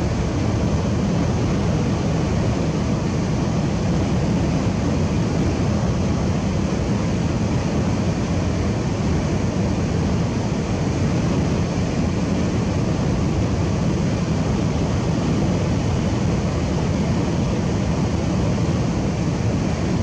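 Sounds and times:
road and wind noise: 0.0 - 20.0.

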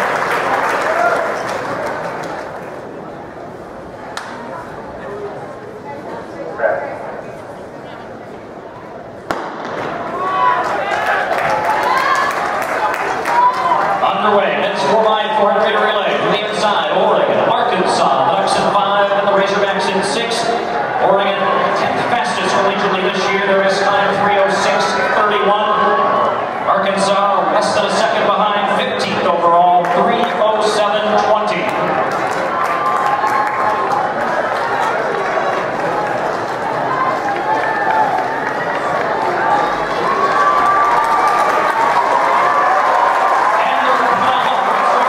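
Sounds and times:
crowd cheering and shouting: 0.0 - 2.6, 9.3 - 28.5, 29.1 - 45.0
man talking: 14.0 - 31.8, 43.6 - 45.0.

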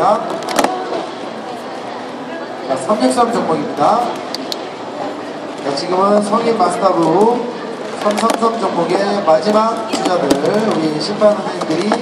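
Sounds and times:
plastic cups clattering: 8.0 - 8.7, 9.4 - 12.0.

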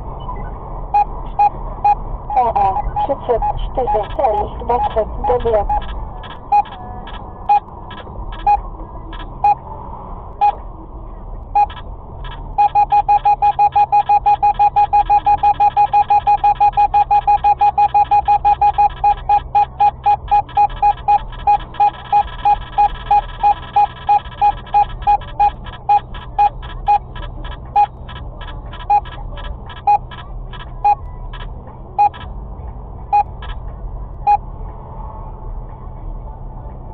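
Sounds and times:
car cabin road noise: 0.0 - 36.9
radar detector beeping: 1.0 - 8.6, 10.4 - 10.6, 12.5 - 28.2, 28.8 - 30.2, 30.8 - 31.0, 32.0 - 32.2, 33.1 - 33.6.

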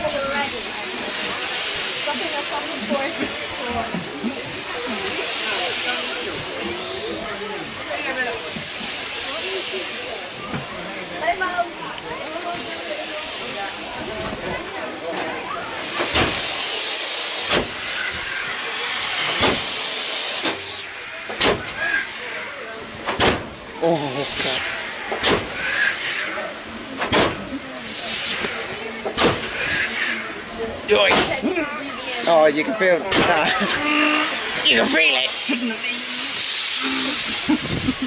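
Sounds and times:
steam hissing: 0.0 - 38.0.

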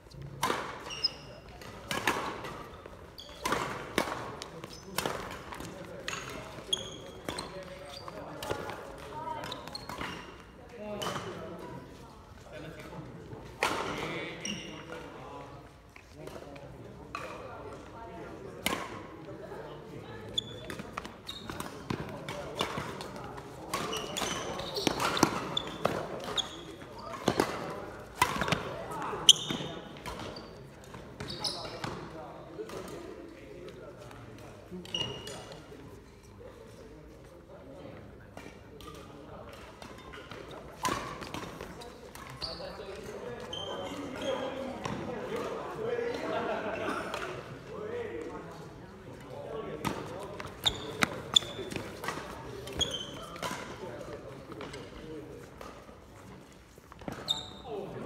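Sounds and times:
shoes squeaking on court floor: 0.1 - 16.6, 18.4 - 33.0, 33.9 - 36.6, 38.4 - 45.8, 48.6 - 58.0.

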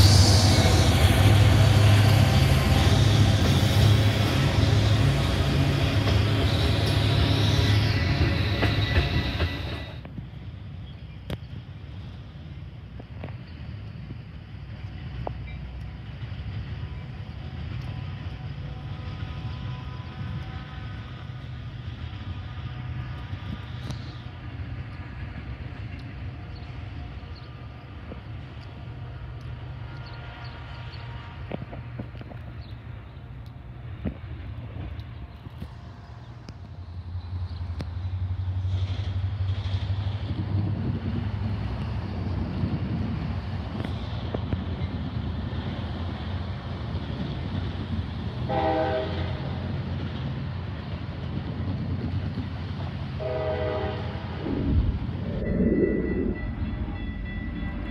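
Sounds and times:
freight train rumbling past: 0.0 - 57.9.

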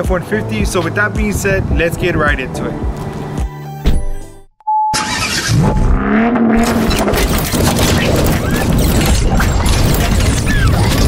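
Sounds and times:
car engine revving: 5.0 - 7.8.

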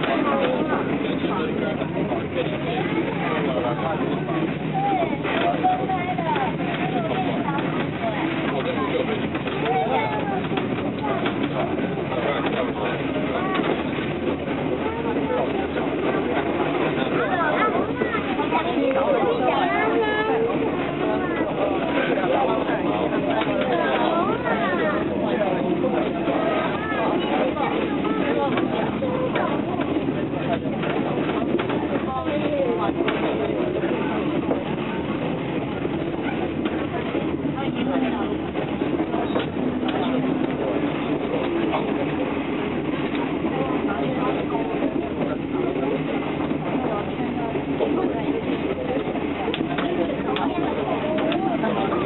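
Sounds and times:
passengers talking faintly: 0.0 - 52.0
train running noise inside coach: 0.0 - 52.0.

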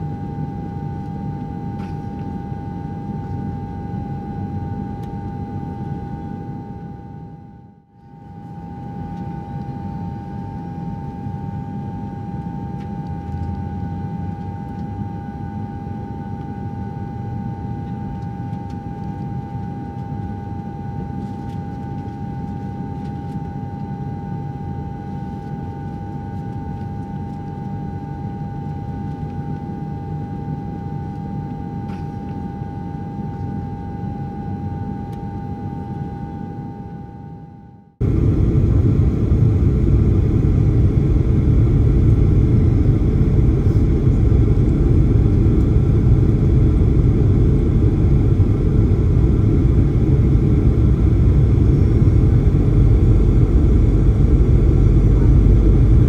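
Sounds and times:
airliner cabin engine rumble: 0.1 - 37.3, 38.0 - 56.0
high engine hum: 38.0 - 56.0.

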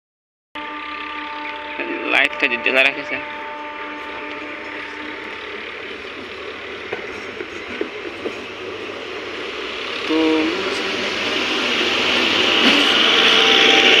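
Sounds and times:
train horn: 0.6 - 6.6, 10.4 - 14.0
train wheels rumbling on rails: 0.6 - 14.0.

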